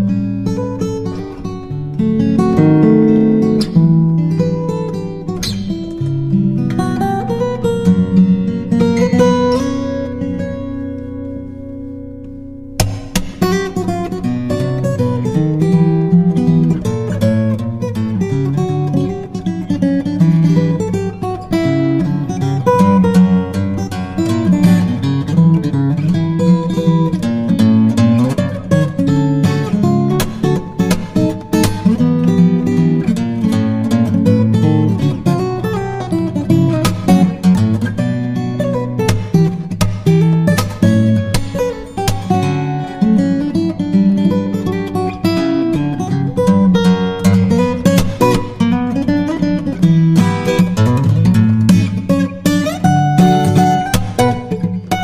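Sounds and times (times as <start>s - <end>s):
acoustic guitar plucked and strummed: 0.0s - 55.0s.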